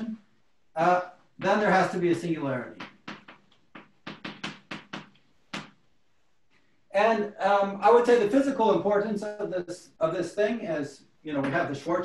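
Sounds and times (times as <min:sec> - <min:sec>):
chalk writing on blackboard: 0:02.8 - 0:05.8.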